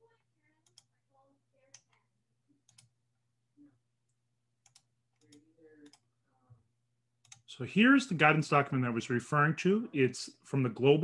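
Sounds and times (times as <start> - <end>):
computer mouse clicks: 0.6 - 0.9, 2.6 - 3.0, 4.6 - 6.1, 7.2 - 7.5.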